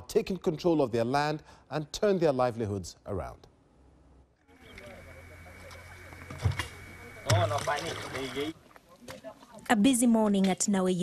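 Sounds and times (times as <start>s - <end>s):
steady hum: 3.7s - 8.5s
faint voices: 4.5s - 9.6s.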